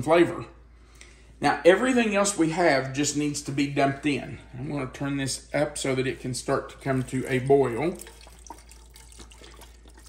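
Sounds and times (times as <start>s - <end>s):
broth pouring into pot: 6.8s - 10.0s.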